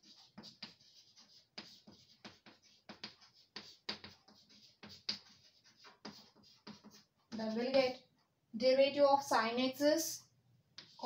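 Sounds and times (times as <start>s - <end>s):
chalk tapping and scraping on blackboard: 0.0s - 8.3s, 10.7s - 11.0s.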